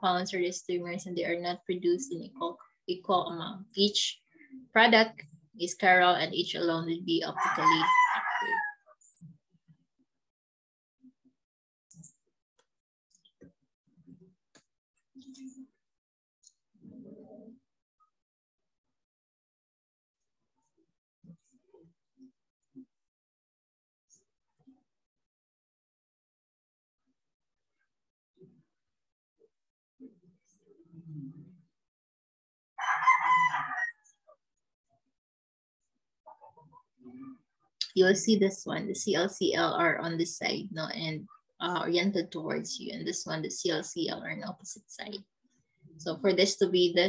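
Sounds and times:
rooster crowing: 7.4 - 8.8, 32.8 - 34.1.

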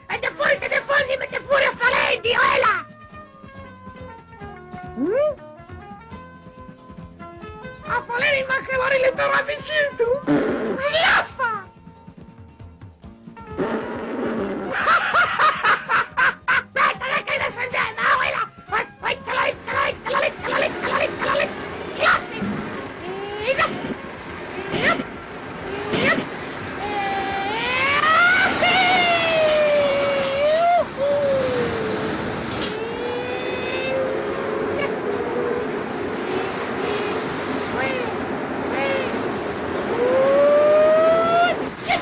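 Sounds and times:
cartoon voice wailing: 10.8 - 11.7, 16.8 - 22.4, 24.7 - 25.1, 25.8 - 32.0
steady rushing noise: 19.0 - 42.0.

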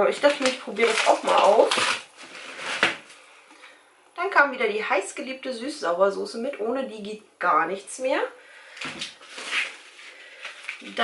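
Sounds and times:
packaging rustle: 0.2 - 3.2, 8.8 - 11.0.

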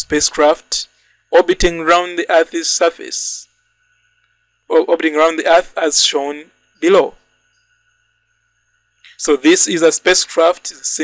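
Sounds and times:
faint steady high tones: 0.0 - 11.0.

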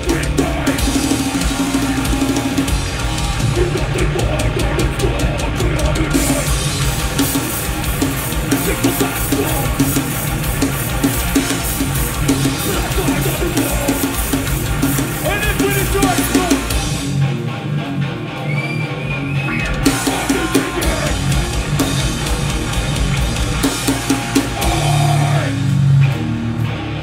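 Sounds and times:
drum kit: 0.0 - 17.6, 18.3 - 27.0
hardcore band playing loud: 0.0 - 27.0
heavy guitars: 0.0 - 27.0.

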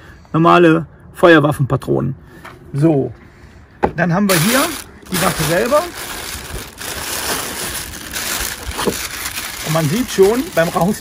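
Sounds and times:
plastic bag crinkling: 4.3 - 11.0.

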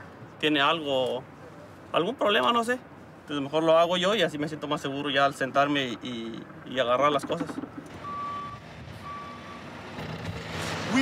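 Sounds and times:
truck reversing alarm beeping: 7.9 - 9.8.

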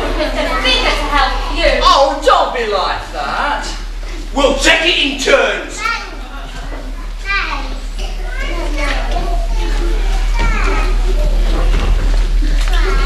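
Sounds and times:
children calling out: 0.0 - 2.4, 5.6 - 13.0
low electrical hum: 0.0 - 13.0.

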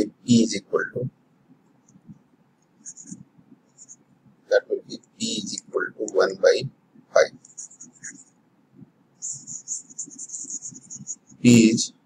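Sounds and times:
stylus scratching on tablet: 2.8 - 4.0, 4.6 - 8.4, 9.2 - 12.0.

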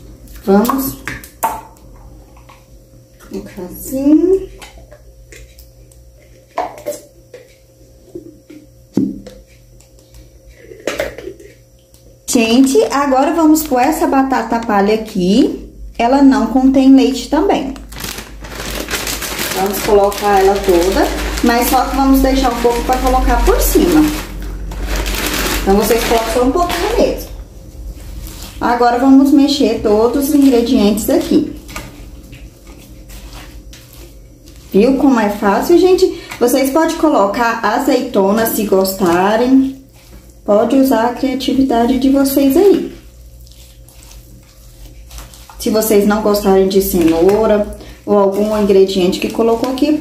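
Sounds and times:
low steady hum: 0.0 - 50.0
packaging crinkling: 17.7 - 28.8, 42.8 - 50.0
spatula stirring wet salad: 27.8 - 50.0.

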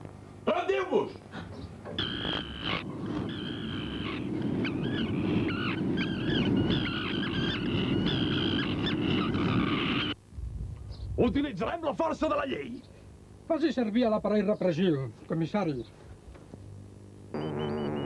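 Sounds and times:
dense low rumble: 10.3 - 11.8.

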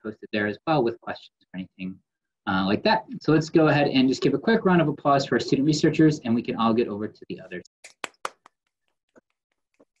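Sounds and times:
hand clapping: 7.8 - 8.8.

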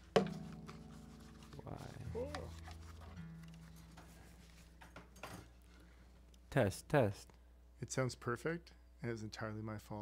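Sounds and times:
acoustic guitar notes ringing: 0.0 - 2.6.

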